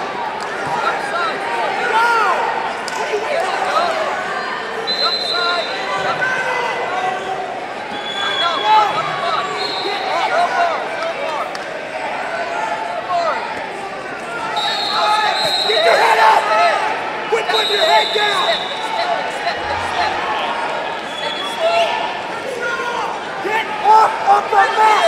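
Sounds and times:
voices talking and shouting: 0:00.0 - 0:25.0.

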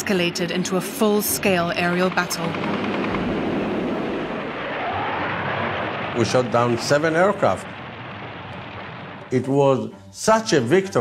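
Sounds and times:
jet fighters roaring: 0:00.0 - 0:09.4
gunfire: 0:01.6 - 0:09.4.

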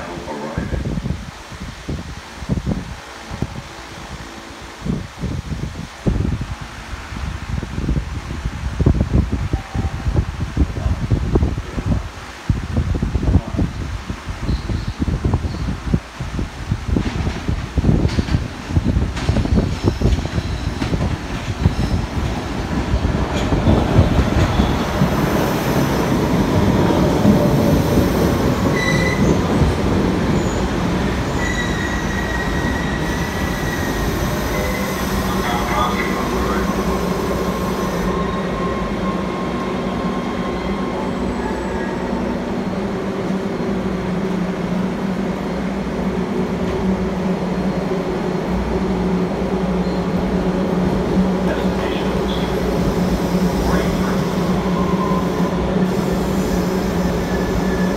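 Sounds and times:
subway train rumbling: 0:00.0 - 0:57.9
train humming: 0:00.0 - 0:57.9
train wheels squealing: 0:19.4 - 0:20.9, 0:28.7 - 0:29.7, 0:30.4 - 0:35.9, 0:36.6 - 0:41.9, 0:49.8 - 0:50.2, 0:53.7 - 0:57.9.

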